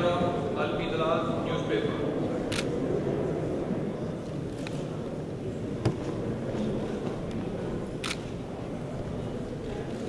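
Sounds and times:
low background noise in hall: 0.0s - 10.0s
camera shutter click: 8.0s - 8.2s.

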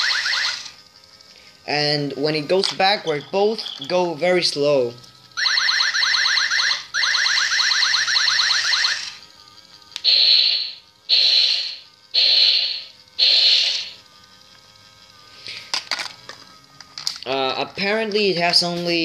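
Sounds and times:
toy robot harsh blasts: 0.0s - 0.8s, 5.4s - 9.2s, 10.0s - 14.0s
toy robot warbling trill: 0.0s - 19.0s.

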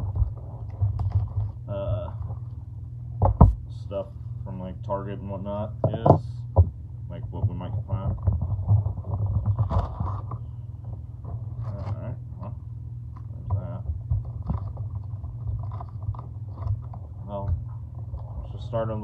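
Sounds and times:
cardboard box lid scraping and rustling: 0.0s - 2.6s, 8.4s - 10.5s, 14.2s - 18.8s
steady low hum: 0.0s - 19.0s.

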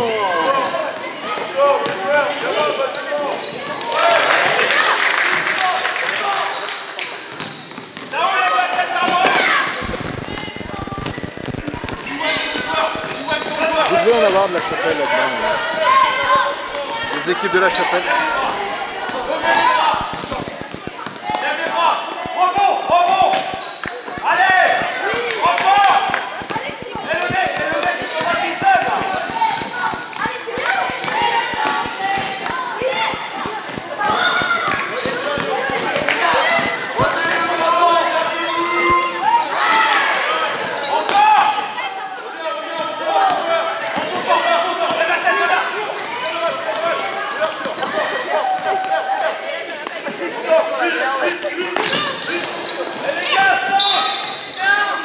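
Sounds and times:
people calling and shouting: 0.0s - 55.0s.

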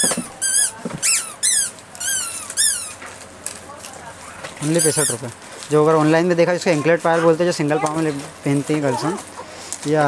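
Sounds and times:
small animal squeaky calls: 0.0s - 3.0s, 4.6s - 5.3s.

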